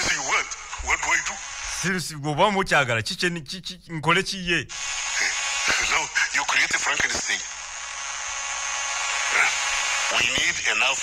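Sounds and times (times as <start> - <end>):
man speaking: 0.0 - 4.7.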